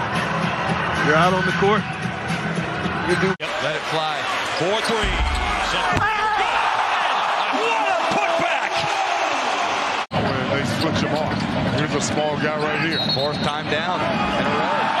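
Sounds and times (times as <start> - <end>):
crowd noise: 0.0 - 15.0
basketball bouncing: 5.0 - 6.7.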